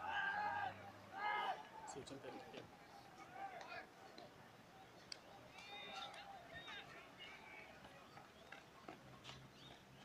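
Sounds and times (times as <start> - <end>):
faint scattered taps: 3.5 - 4.4, 7.8 - 10.0.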